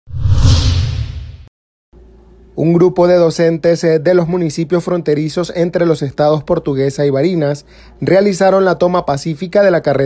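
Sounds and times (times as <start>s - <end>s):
whoosh sound effect: 0.1s - 1.5s.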